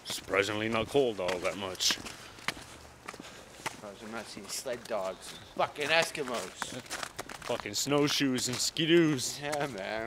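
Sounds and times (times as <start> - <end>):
footsteps crunching on snow: 0.0 - 10.0.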